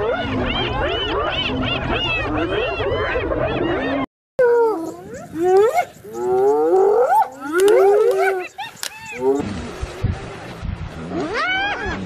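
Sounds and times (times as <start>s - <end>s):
hyenas whooping and squealing: 0.0s - 9.4s, 11.1s - 12.0s.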